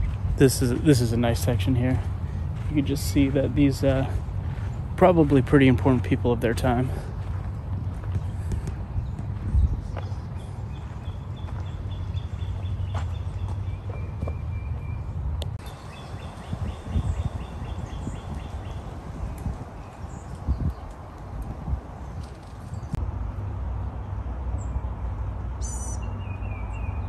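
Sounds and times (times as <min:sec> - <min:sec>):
wind rumble: 0:00.0 - 0:24.4.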